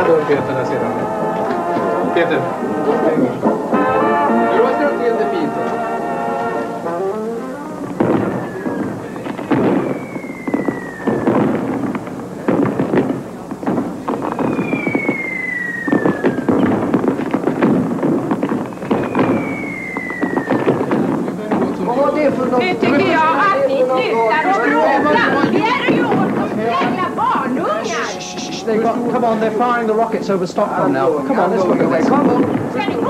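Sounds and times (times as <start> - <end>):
fireworks bangs and cracks: 0.0 - 33.0
fireworks whistles falling in pitch: 0.0 - 33.0.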